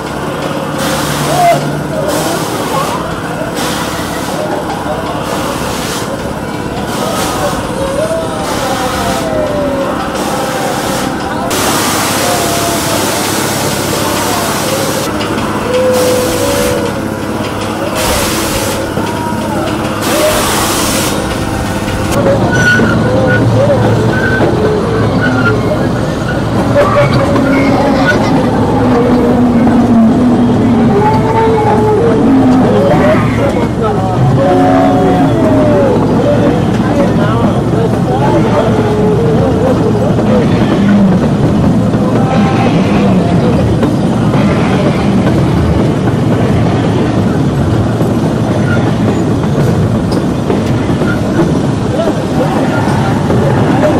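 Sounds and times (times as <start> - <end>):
people chattering: 0.0 - 53.9
small train rumbling: 0.0 - 53.9.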